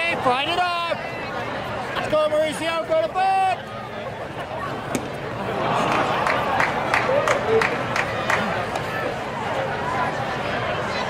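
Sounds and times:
crowd chatter: 0.0s - 11.0s
spectators clapping in rhythm: 5.8s - 8.9s.

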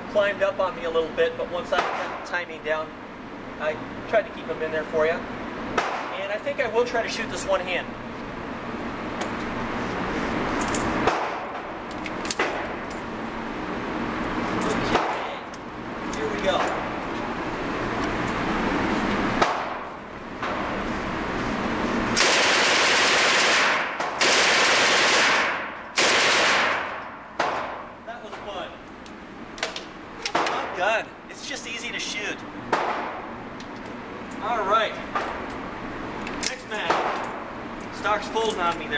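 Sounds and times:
shooting range noise: 1.6s - 2.5s, 5.6s - 6.3s, 10.5s - 13.6s, 14.4s - 17.2s, 18.3s - 20.8s, 22.1s - 30.8s, 32.6s - 34.4s, 35.0s - 38.9s
submachine gun bursts: 22.2s - 26.8s.

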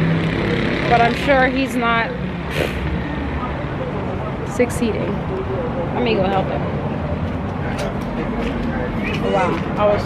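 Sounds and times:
low traffic rumble: 0.0s - 10.0s
short hiss: 2.5s - 2.9s.

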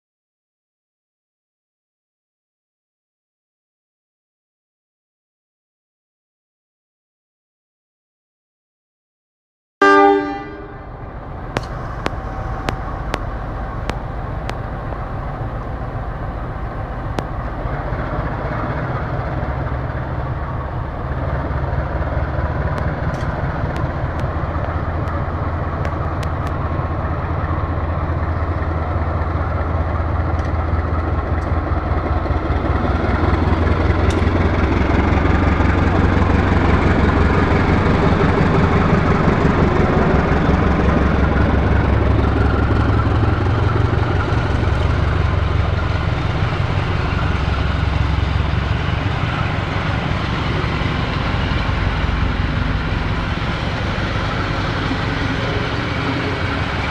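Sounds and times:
diesel locomotive rumbling: 9.8s - 56.9s
train wheels rolling on rails: 10.9s - 56.9s.

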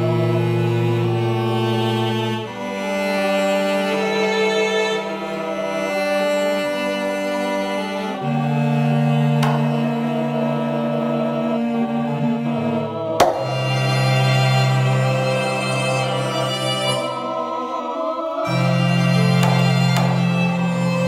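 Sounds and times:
sustained chords over bass note: 8.2s - 21.0s.

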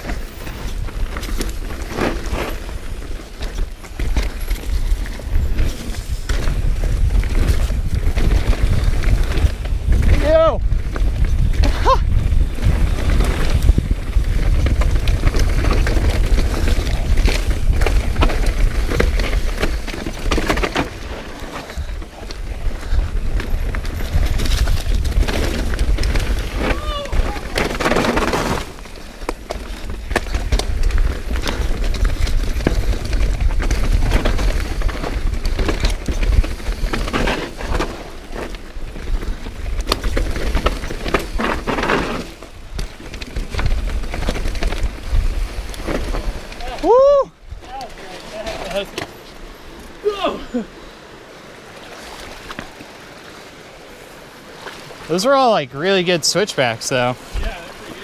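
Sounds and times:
wind buffeting microphone: 0.0s - 48.8s
mountain bike rattling on trail: 0.0s - 58.0s.

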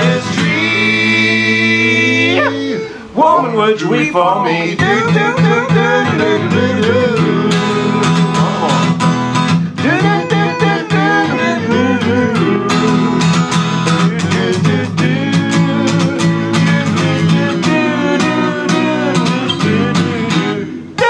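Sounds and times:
acoustic guitar strumming: 0.0s - 21.0s
men singing in harmony: 0.0s - 21.0s.

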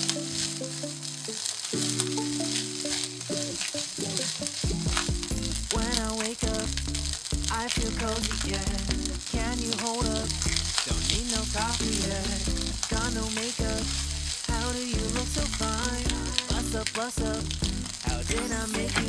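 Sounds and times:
rice sizzling in a pan: 0.0s - 19.0s
song with a steady beat: 1.8s - 19.0s.

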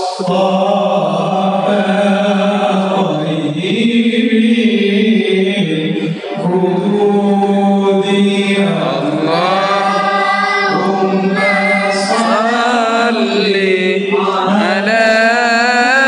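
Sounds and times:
voices singing melodic lines: 8.0s - 15.4s.

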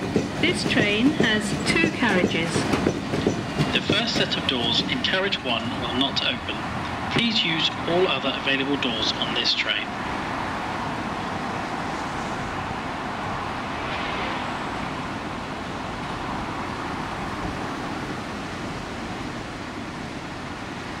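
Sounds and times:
train wagons rumbling on rails: 0.0s - 21.0s.

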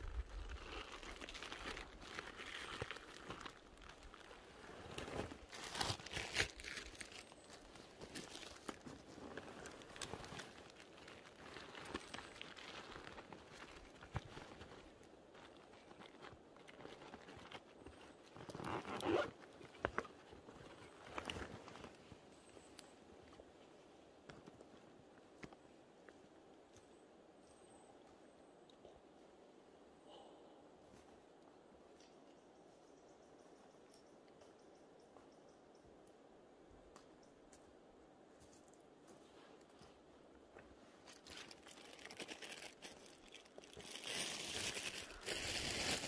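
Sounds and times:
crunching of dry forest litter: 0.0s - 27.0s, 38.3s - 46.0s.

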